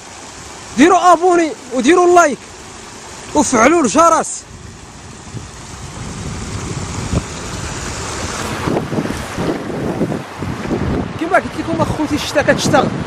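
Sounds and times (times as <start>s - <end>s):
floodwater rushing over rocks: 0.0s - 13.0s
wind buffeting microphone: 3.4s - 13.0s.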